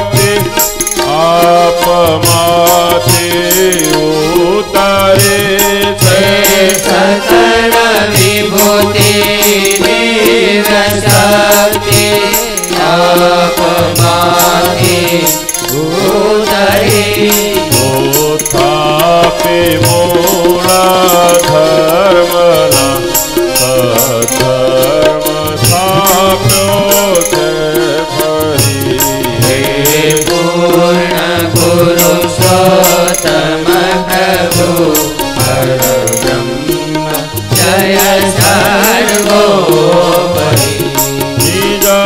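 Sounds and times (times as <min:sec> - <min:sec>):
chant-like devotional singing: 0:00.0 - 0:42.0
sharp percussive strikes: 0:00.0 - 0:42.0.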